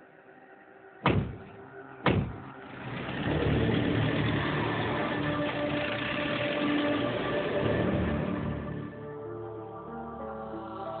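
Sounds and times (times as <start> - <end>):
vehicle doors shutting: 2.1 - 2.6
vehicle engine running: 2.1 - 8.9.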